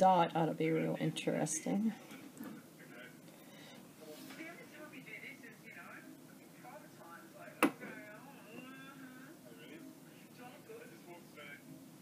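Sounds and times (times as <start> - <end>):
faint television speech: 1.6 - 11.8.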